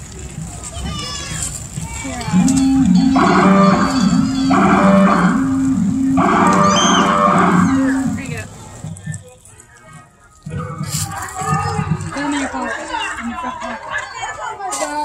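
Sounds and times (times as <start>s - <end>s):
scattered voices: 0.2s - 15.0s
loud low horn: 2.3s - 8.5s.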